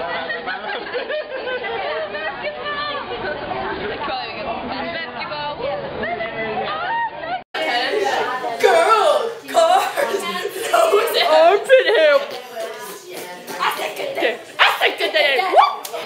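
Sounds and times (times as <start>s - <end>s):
overlapping group chatter: 0.0s - 16.0s
louder voices: 7.6s - 16.0s.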